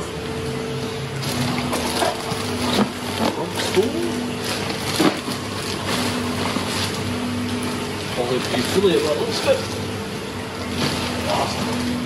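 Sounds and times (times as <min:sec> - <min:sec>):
sharp plastic crackles: 0:01.2 - 0:09.4
plastic bags crinkling: 0:01.2 - 0:09.6, 0:10.6 - 0:12.0.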